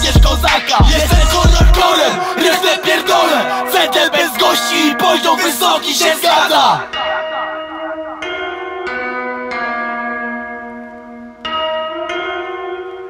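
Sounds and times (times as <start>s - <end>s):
bell-like chimes: 2.0s - 13.0s.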